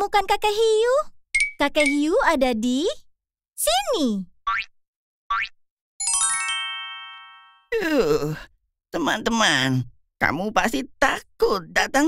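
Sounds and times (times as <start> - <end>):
bell-like chime notes: 6.0 - 7.7.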